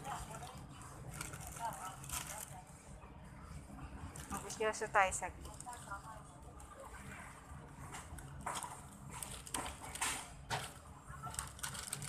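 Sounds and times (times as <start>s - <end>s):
plastic packaging rustling: 10.6s - 12.0s.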